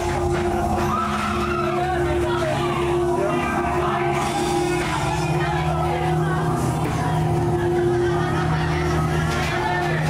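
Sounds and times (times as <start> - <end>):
steady held drone: 0.0 - 10.0.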